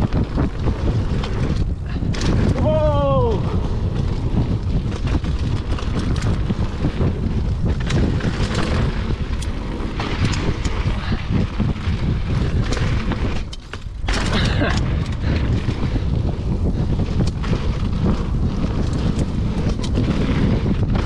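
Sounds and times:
bike clicks and rattles: 0.0 - 21.0
tyres rumbling on dirt: 0.0 - 21.0
wind buffeting microphone: 0.0 - 21.0.

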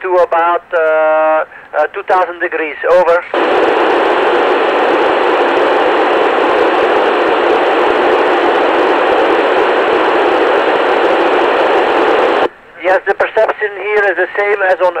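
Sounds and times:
radio receiver static hiss: 0.4 - 15.0.

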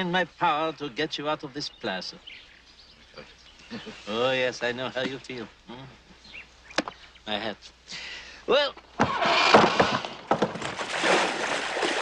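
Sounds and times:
wet thuds and splashes: 9.6 - 12.0
loud splash: 10.6 - 12.0.

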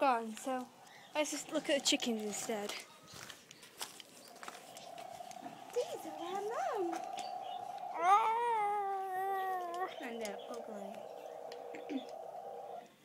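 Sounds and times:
chickens calling: 0.1 - 12.9.

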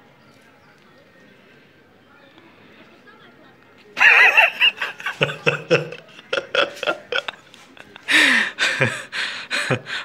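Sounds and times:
person laughing breathily: 4.0 - 10.0.

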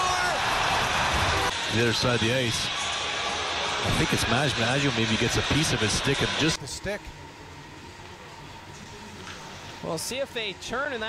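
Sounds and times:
murmur of arena crowd: 0.0 - 6.6.

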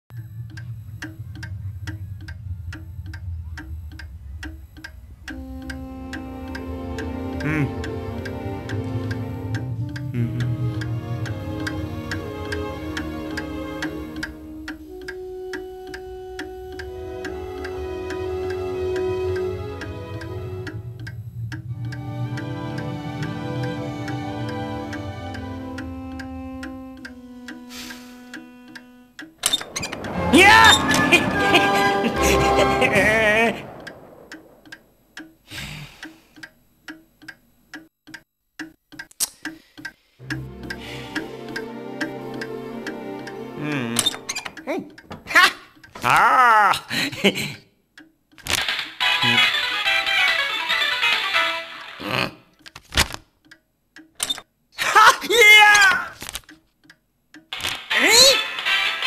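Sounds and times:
clock ticking: 0.0 - 59.0
held chord of steady tones: 0.1 - 35.0, 40.3 - 44.0
low steady rumble: 0.1 - 35.5
sharp clicks and knocks: 28.3 - 31.4, 33.6 - 40.8, 44.0 - 46.2, 48.0 - 49.0, 52.6 - 54.5.

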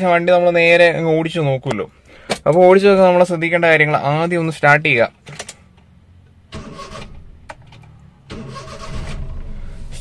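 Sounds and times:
car engine cranking and running: 5.3 - 10.0.

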